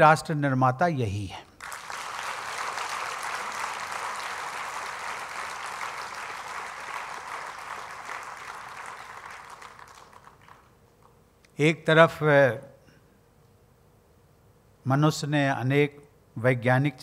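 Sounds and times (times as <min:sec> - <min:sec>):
audience applauding: 0:01.6 - 0:10.8.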